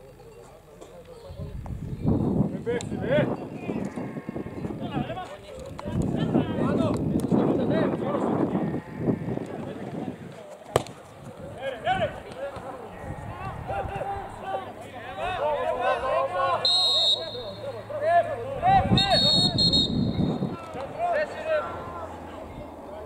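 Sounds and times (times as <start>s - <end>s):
players and spectators shouting: 11.6s - 23.0s
referee's whistle blasts: 16.6s - 17.7s, 18.9s - 20.6s.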